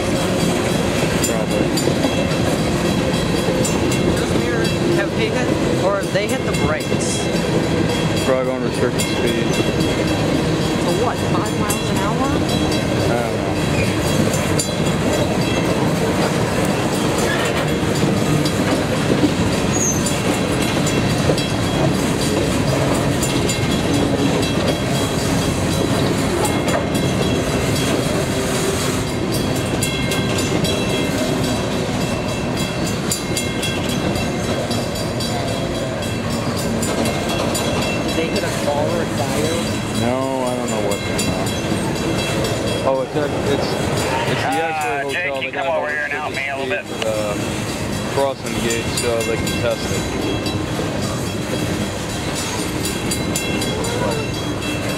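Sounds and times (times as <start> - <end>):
wheels clattering over rail joints: 0.0 - 45.1, 46.9 - 54.9
train wheels rumbling on rails: 0.0 - 54.9.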